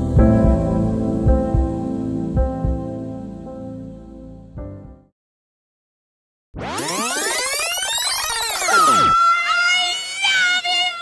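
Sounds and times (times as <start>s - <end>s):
music: 0.0s - 5.1s
synthesized tone sweep: 6.6s - 11.0s
wavering high note: 6.8s - 11.0s.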